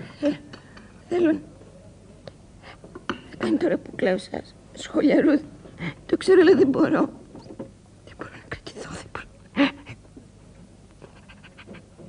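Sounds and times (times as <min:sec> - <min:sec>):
tape recording hum: 0:00.0 - 0:12.0
woman crying quietly: 0:09.5 - 0:10.0.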